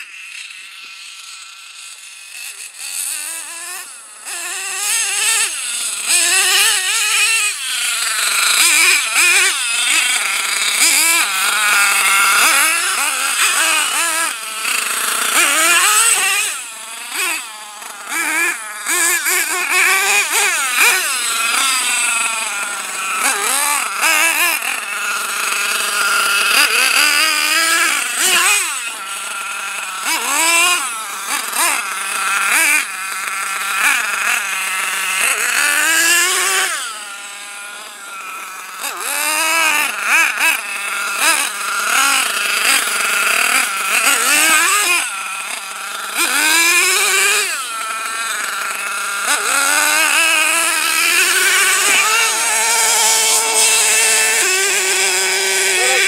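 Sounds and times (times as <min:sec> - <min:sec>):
rc truck nitro engine revving: 0:00.0 - 0:56.0.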